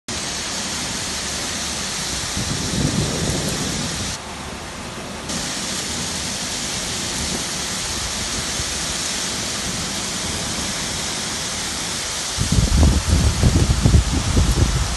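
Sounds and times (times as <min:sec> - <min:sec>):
torrential rain and hail: 0:00.1 - 0:14.9.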